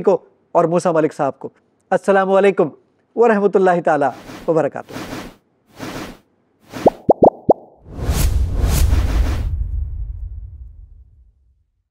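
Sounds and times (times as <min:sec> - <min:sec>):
quick rising blips: 0:06.7 - 0:08.4
whoosh with deep bass boom: 0:07.8 - 0:11.6.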